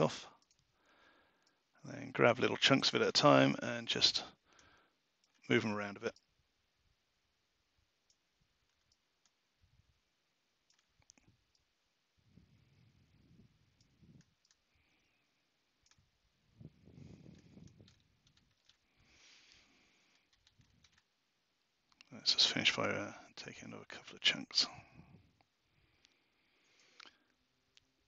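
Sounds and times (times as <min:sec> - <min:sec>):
computer mouse clicks: 0:00.4 - 0:00.7, 0:08.0 - 0:09.4, 0:10.6 - 0:11.7, 0:13.7 - 0:15.0, 0:15.7 - 0:16.1, 0:17.2 - 0:18.9, 0:19.5 - 0:21.1
soft low rustles: 0:16.0 - 0:21.2.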